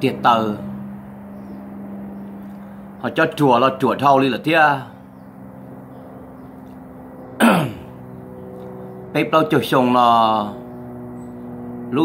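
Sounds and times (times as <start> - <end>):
steady low hum: 0.0 - 12.0
man clearing his throat: 7.4 - 8.0.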